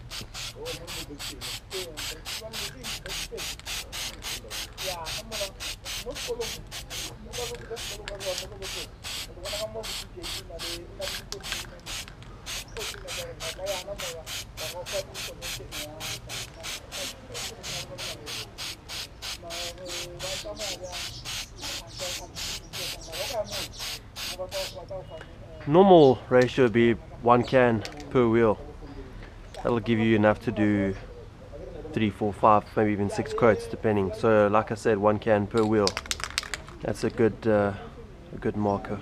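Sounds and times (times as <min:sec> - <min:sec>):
aerosol can spraying hiss: 0:00.0 - 0:24.7.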